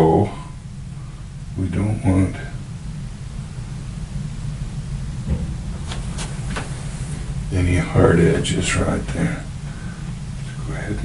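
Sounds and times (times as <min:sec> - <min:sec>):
low hum of room noise: 0:00.0 - 0:11.0
soft knock: 0:05.2 - 0:06.0.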